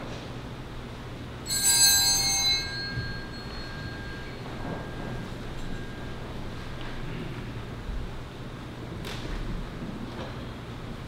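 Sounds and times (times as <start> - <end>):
small altar bell ringing: 1.4 - 7.9.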